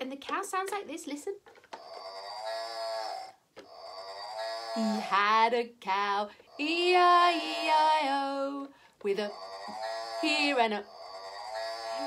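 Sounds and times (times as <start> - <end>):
electronic cow moo from toy speaker: 1.8 - 5.2, 6.5 - 8.5, 9.1 - 12.0.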